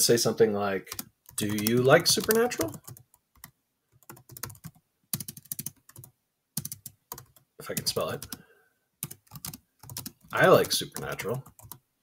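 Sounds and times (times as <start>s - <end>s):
typing on computer keyboard: 0.9s - 8.4s, 9.0s - 11.8s.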